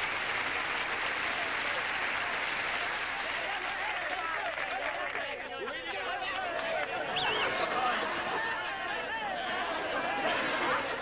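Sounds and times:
audience applauding: 0:00.0 - 0:08.7
voices: 0:01.3 - 0:11.0.

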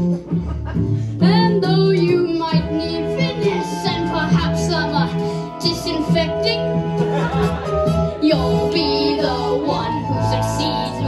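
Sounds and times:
instrumental accompaniment: 0:00.0 - 0:11.0
child singing: 0:01.2 - 0:06.8, 0:08.2 - 0:11.0.

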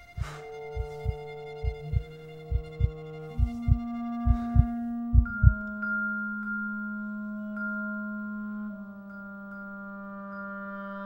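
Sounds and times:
heartbeat-like thumping pulse: 0:00.0 - 0:05.7
sustained orchestral chords: 0:00.0 - 0:11.0.

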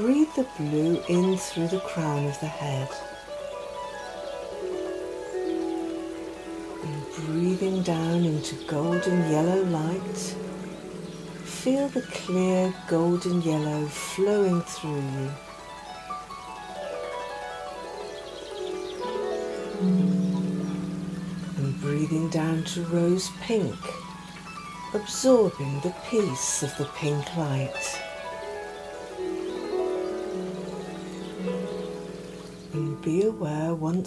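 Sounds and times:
harp plucked notes: 0:00.0 - 0:34.0.

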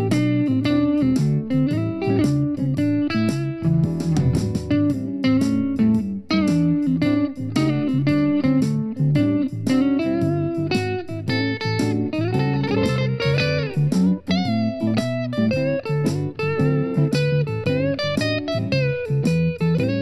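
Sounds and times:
electric guitar playing blues: 0:00.0 - 0:20.0.

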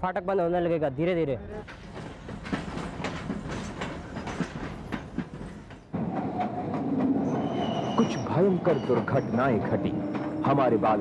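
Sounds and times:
train wheels clicking on rails: 0:01.6 - 0:11.0.

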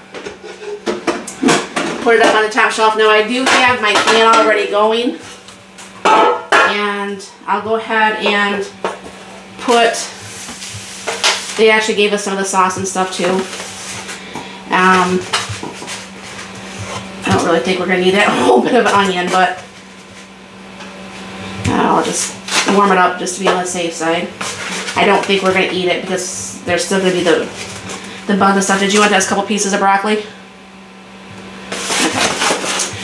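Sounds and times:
steady low hum: 0:00.0 - 0:33.0
kitchenware knocking and clattering: 0:06.1 - 0:06.8.

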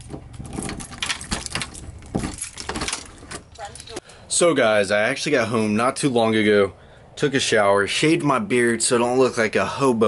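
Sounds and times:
keys jingling: 0:00.0 - 0:04.1.

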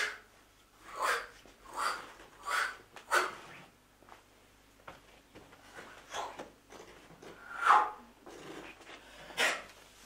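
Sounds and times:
man sniffing and gasping: 0:00.8 - 0:03.5.

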